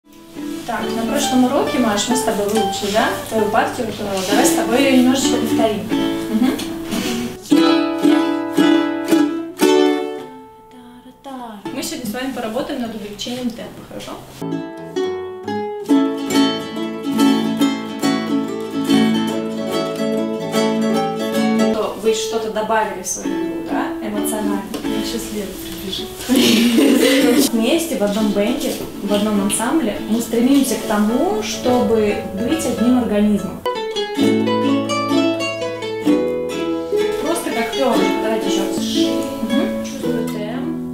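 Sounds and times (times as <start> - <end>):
ukuleles and classical guitar playing: 0.0 - 40.9.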